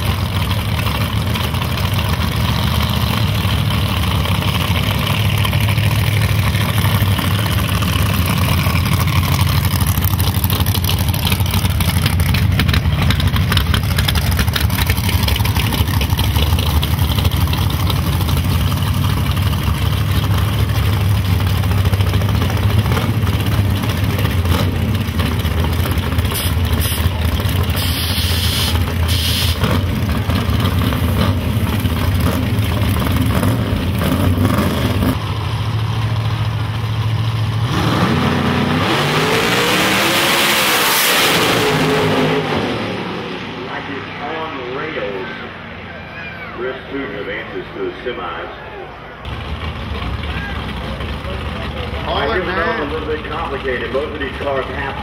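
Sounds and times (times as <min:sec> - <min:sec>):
drag car engines idling: 0:00.0 - 0:37.7, 0:43.5 - 0:55.0
engines revving and launching: 0:00.0 - 0:55.0.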